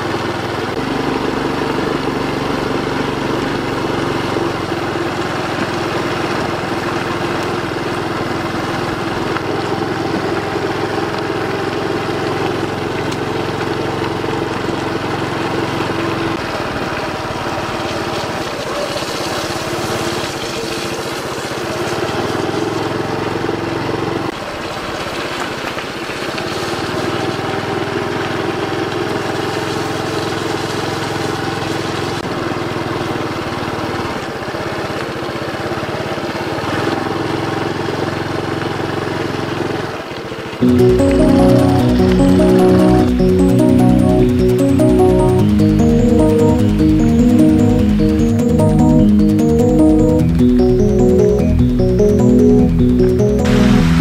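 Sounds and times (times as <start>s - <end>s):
motorcycle engine running: 0.0s - 17.8s.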